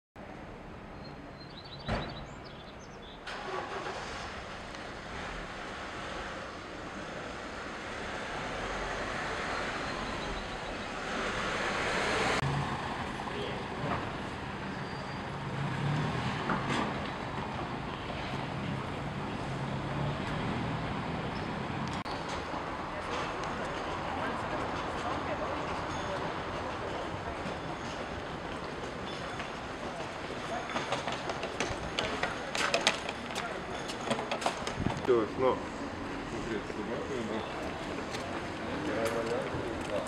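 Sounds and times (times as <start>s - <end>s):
echoing street noise: 0.2s - 40.0s.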